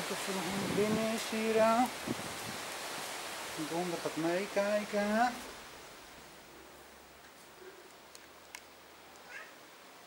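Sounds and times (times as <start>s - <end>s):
cat meowing: 9.2s - 9.6s.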